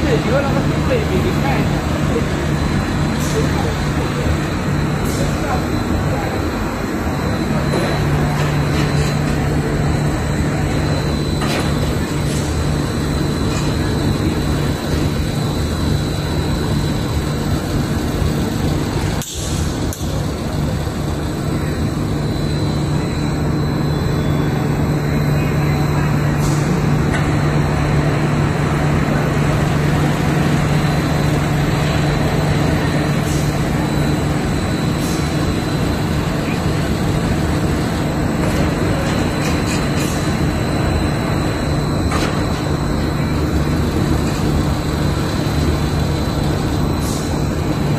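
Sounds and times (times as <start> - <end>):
production machinery droning: 0.0 - 47.9.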